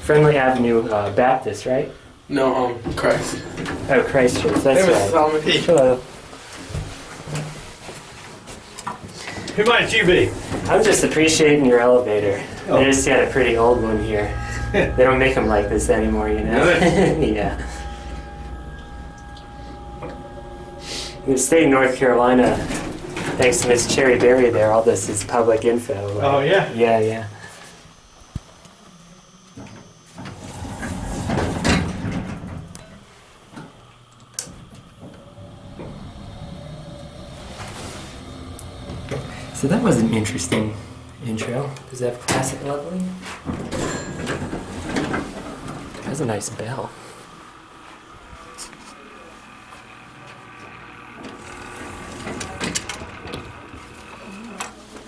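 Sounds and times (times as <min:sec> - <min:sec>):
elevator hum: 0:00.0 - 0:08.3, 0:09.1 - 0:55.0
elevator doors sliding shut: 0:02.9 - 0:07.8, 0:09.2 - 0:26.3, 0:30.0 - 0:33.2, 0:34.4 - 0:46.4, 0:49.8 - 0:54.2.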